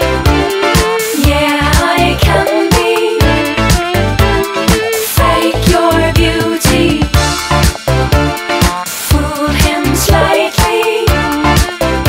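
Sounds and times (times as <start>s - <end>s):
pop song with drums bass guitar: 0.0s - 12.0s.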